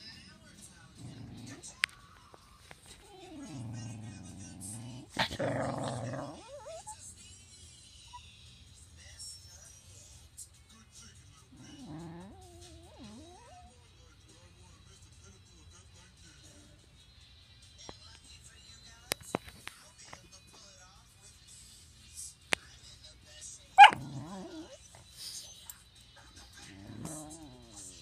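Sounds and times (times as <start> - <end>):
dog growling and whining: 0.9 - 1.8, 2.8 - 7.0, 11.5 - 13.8, 23.8 - 25.2, 26.6 - 28.0
dog barking: 23.8 - 24.8.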